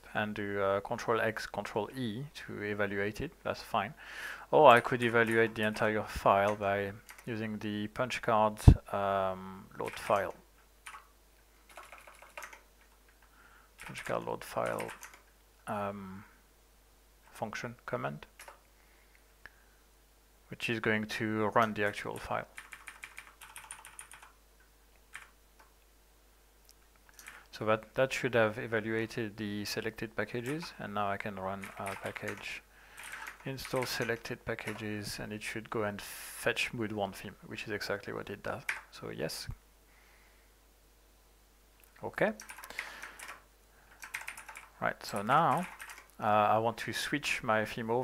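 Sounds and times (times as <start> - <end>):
computer keyboard typing: 4.7 - 7.3, 9.8 - 11.1, 11.7 - 12.6, 13.8 - 15.3, 18.4 - 18.6, 21.6 - 24.4, 25.1 - 25.3, 27.1 - 27.5, 31.6 - 34.9, 38.7 - 38.9, 42.4 - 46.1.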